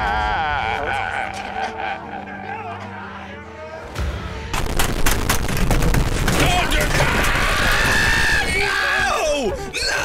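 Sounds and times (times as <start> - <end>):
man wailing and sobbing: 0.0 - 3.3
rapid sharp cracks: 4.5 - 8.6.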